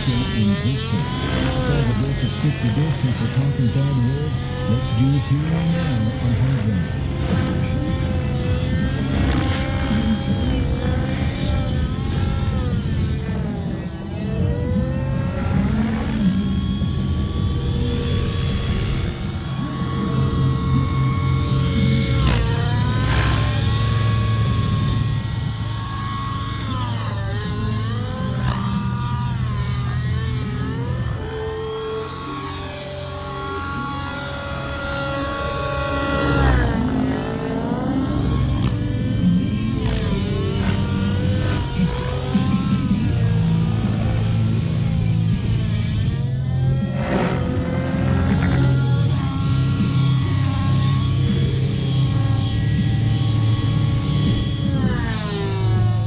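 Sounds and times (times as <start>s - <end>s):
model helicopter engine and rotor: 0.0s - 56.0s
rock music: 0.0s - 56.0s.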